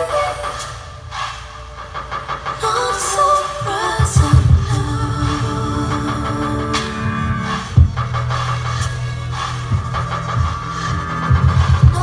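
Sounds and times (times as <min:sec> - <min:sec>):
deep bass hits: 0:04.1 - 0:12.0.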